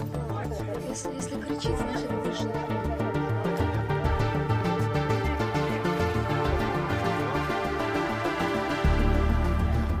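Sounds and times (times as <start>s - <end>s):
electronic music with steady beat: 0.0s - 10.0s.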